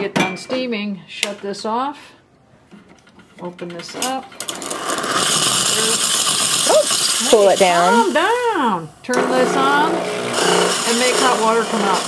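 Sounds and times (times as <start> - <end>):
steam wand hissing: 4.9 - 8.6.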